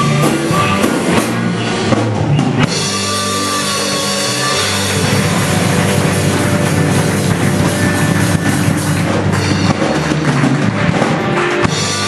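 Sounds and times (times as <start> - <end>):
live blues-rock band: 0.0 - 12.0
harmonica: 2.7 - 8.4.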